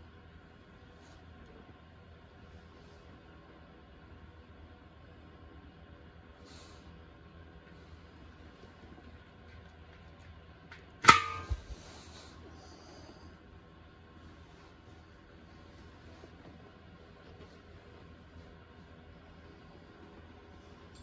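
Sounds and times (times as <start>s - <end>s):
metal tank ringing: 11.0s - 11.7s.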